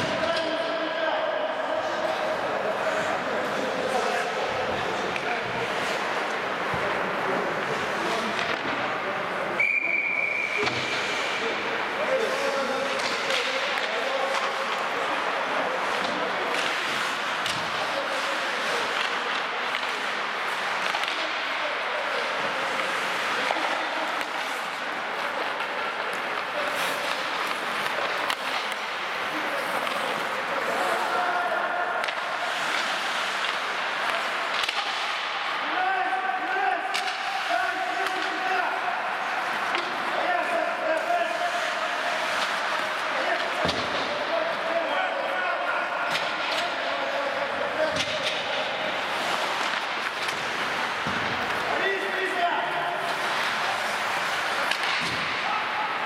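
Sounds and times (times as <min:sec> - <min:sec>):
skate blades scraping ice: 0:01.8 - 0:09.5, 0:10.4 - 0:35.7, 0:36.4 - 0:45.4, 0:46.3 - 0:56.0
sticks and puck clacking: 0:01.8 - 0:56.0
players shouting: 0:19.8 - 0:56.0.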